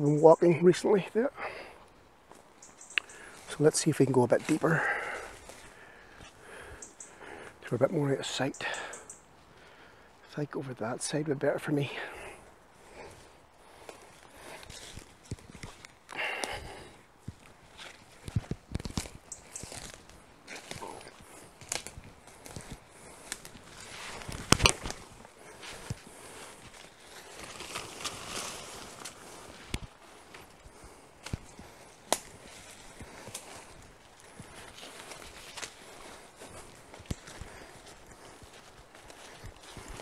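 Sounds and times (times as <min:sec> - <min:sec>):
footsteps crunching leaves: 0:12.8 - 0:40.0
sharp crack: 0:24.1 - 0:25.0, 0:32.1 - 0:32.4.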